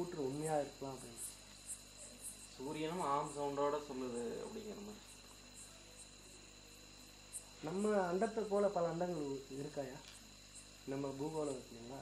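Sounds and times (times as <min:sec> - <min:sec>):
high-pitched insect chirping: 0:00.0 - 0:12.0.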